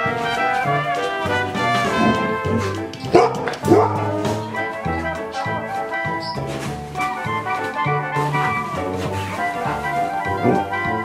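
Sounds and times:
background music with brass: 0.0 - 11.0
dog barking: 1.6 - 6.4, 9.5 - 11.0.

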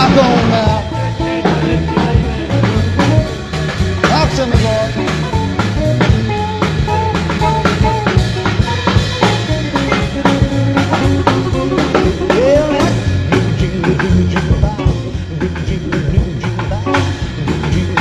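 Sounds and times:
bass: 0.0 - 18.0
drum kit beat: 0.0 - 18.0
electric guitar lead: 0.0 - 18.0.

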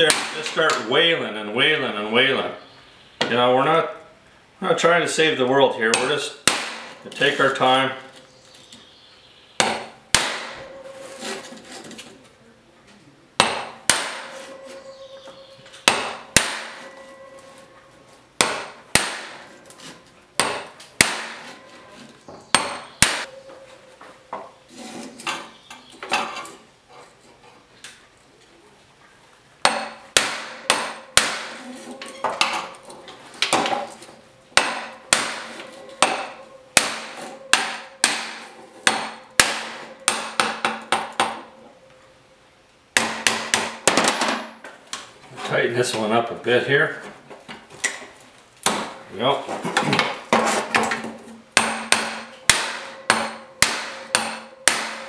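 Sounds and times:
hammer striking steel bar: 0.1 - 0.8, 5.9 - 7.0, 9.6 - 11.5, 13.4 - 15.1, 15.8 - 17.3, 18.4 - 19.6, 20.4 - 21.8, 29.6 - 32.8, 33.5 - 41.5, 43.0 - 44.4, 51.6 - 55.0.

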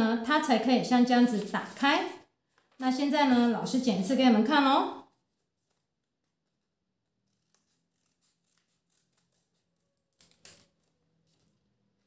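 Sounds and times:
scissors cutting paper: 5.3 - 12.0.

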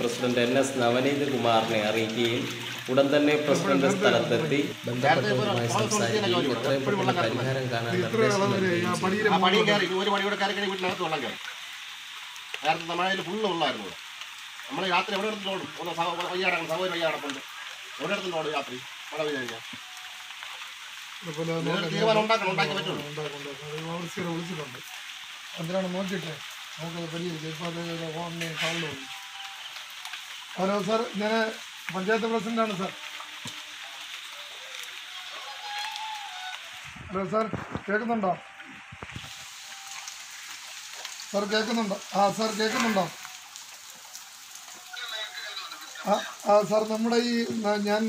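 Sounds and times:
man speaking: 0.0 - 11.4, 21.2 - 24.8
rain falling: 0.0 - 48.0
water hissing: 0.0 - 48.0.

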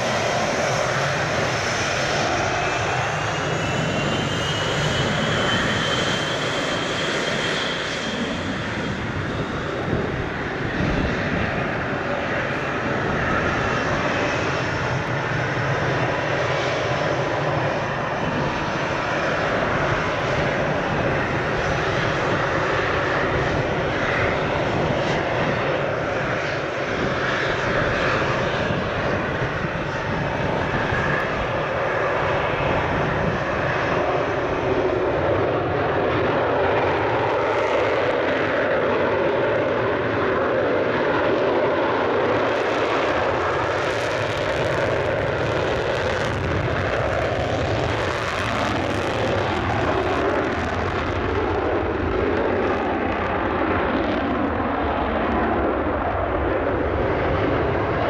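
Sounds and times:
jet engines taxiing: 0.0 - 58.0.

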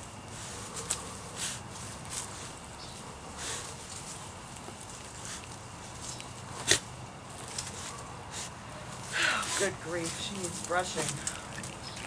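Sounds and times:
dog rustling on gravel: 0.3 - 12.0.

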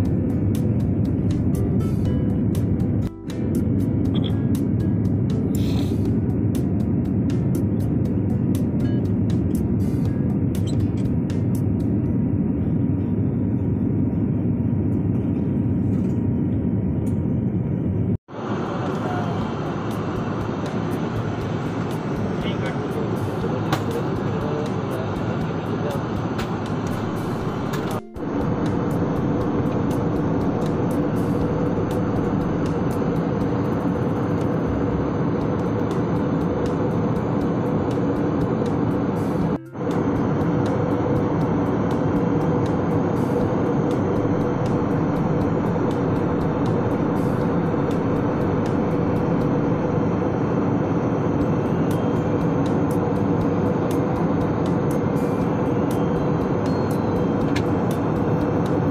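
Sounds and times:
faint steady hums: 0.0 - 58.9
jet cabin roar: 0.0 - 58.9.

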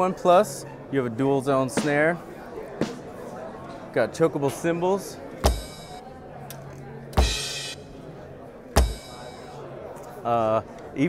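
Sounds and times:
electronic kick drum: 5.4 - 6.0, 7.2 - 7.5, 8.8 - 9.2
crash cymbal choked: 7.2 - 7.9.

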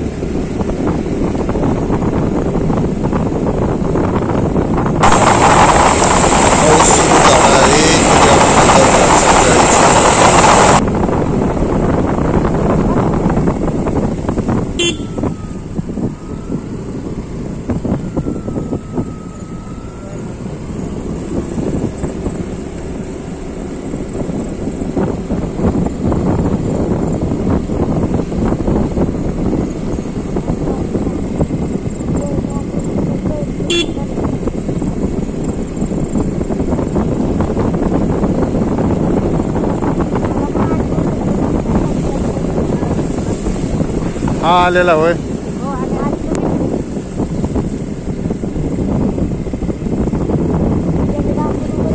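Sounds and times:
vehicle road noise on wet road: 0.0 - 51.9.

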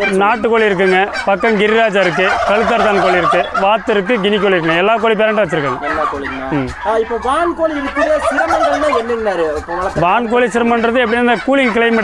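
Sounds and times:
man's voice: 0.0 - 12.0
turkeys gobbling: 0.0 - 12.0.

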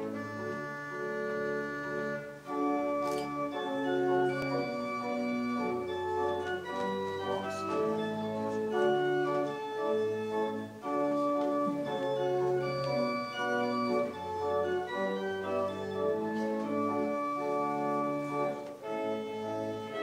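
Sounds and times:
organ playing slow chords: 0.0 - 20.0.

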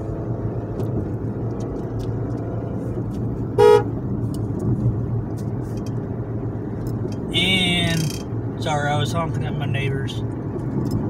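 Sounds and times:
car engine and road noise: 0.0 - 11.0
car horn toot: 3.6 - 3.9.

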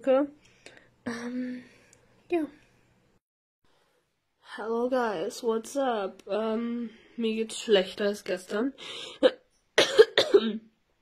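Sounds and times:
woman coughing: 9.2 - 10.7.

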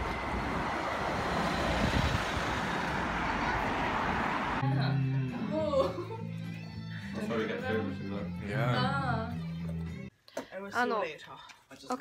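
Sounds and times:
bus engine rumbling: 0.0 - 5.3
street traffic: 0.0 - 5.5.

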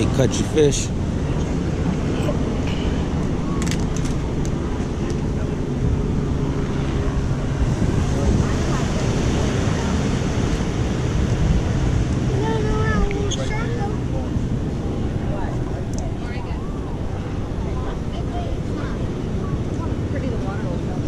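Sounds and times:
faint voices: 0.0 - 21.0
sea: 0.0 - 21.0
wind rumble on microphone: 0.0 - 21.0.

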